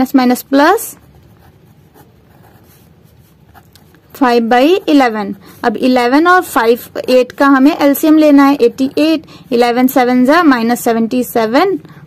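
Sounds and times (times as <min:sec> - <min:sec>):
pen scratching on paper: 0:00.6 - 0:06.4, 0:07.4 - 0:10.1.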